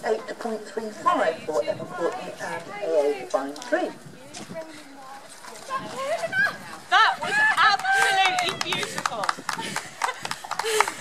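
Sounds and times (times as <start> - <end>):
people's voices: 0.0 - 11.0
horse hooves trotting: 4.3 - 11.0.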